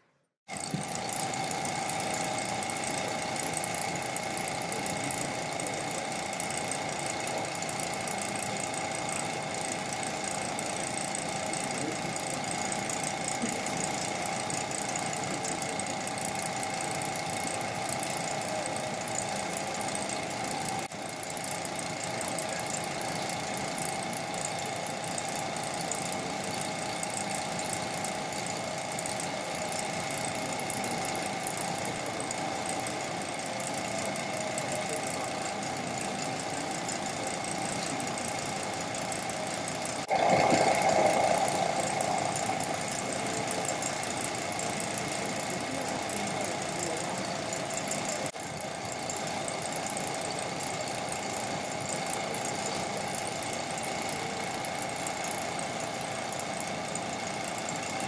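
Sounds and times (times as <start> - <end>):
laser cutter whirring and whining: 0.5 - 58.0.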